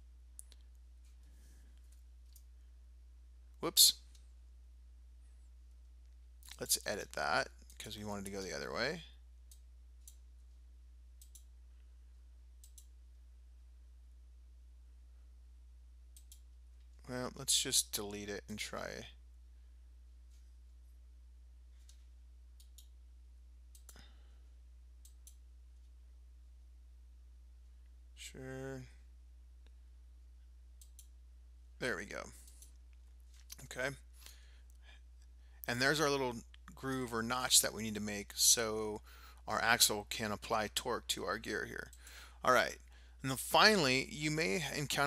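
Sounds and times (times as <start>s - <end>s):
low electrical hum: 0.0s - 45.0s
computer mouse clicks: 11.2s - 11.5s, 12.6s - 12.9s, 16.1s - 16.5s, 22.6s - 23.0s, 23.7s - 24.1s, 30.8s - 31.2s
faint click: 12.6s - 12.9s, 23.7s - 24.1s.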